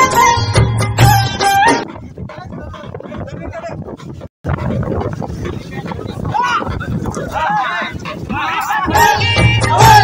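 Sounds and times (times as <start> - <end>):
recorded song music: 0.0 - 3.2, 6.8 - 10.0
crowd voices: 5.0 - 10.0.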